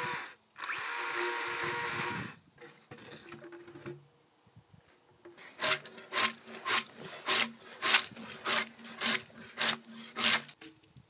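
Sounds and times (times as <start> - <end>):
hand tool strokes on wooden log: 5.4 - 10.6.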